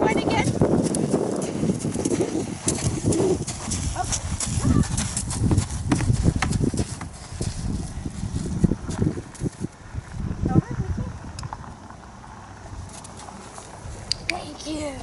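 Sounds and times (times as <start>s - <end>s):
horse hooves on gravel: 0.0s - 10.2s, 11.5s - 15.0s
footsteps on gravel: 0.4s - 10.2s, 11.6s - 15.0s.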